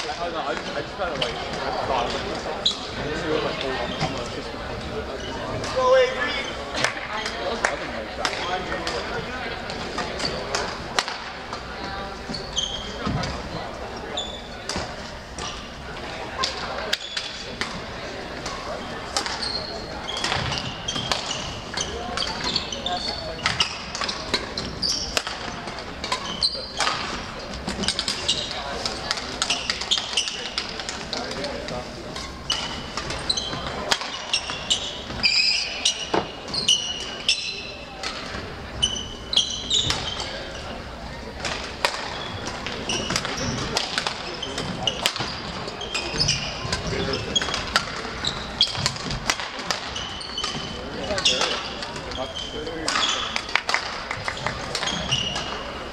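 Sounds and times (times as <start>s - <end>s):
background chatter of voices: 0.0s - 55.9s
sneakers squeaking: 0.6s - 55.9s.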